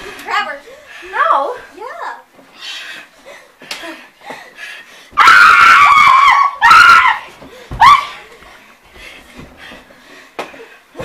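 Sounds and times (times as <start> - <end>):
child screaming: 5.2 - 7.2.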